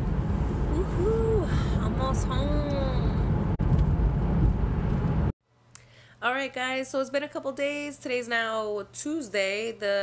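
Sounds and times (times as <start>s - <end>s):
car cabin road rumble: 0.0s - 5.4s.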